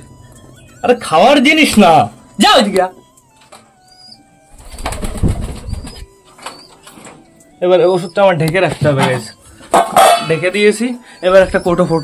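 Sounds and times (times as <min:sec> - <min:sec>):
pigeons cooing: 0:03.6 - 0:08.5, 0:09.1 - 0:12.0.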